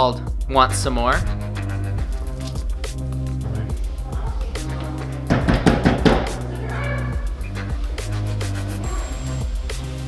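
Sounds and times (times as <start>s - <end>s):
background music: 0.0s - 10.0s
knocking on front door: 5.2s - 6.5s.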